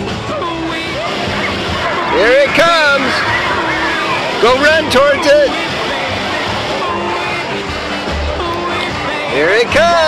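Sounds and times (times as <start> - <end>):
music: 0.0 - 10.0
water rushing: 0.8 - 7.2.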